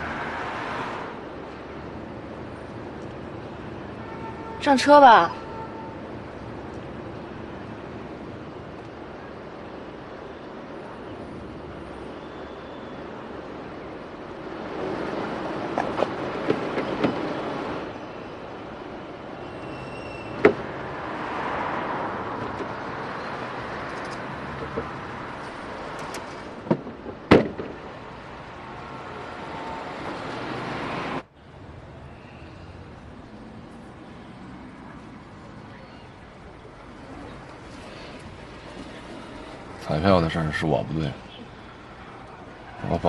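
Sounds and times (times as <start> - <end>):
vehicle and road noise: 0.0 - 43.0.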